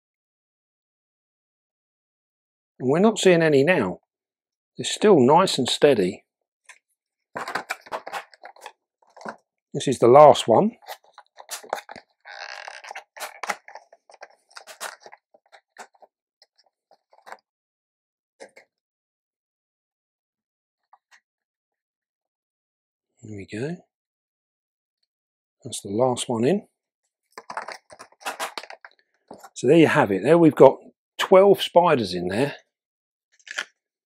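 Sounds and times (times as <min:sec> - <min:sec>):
small dry clicks and crackles: 0:10.9 - 0:17.4, 0:27.3 - 0:29.5.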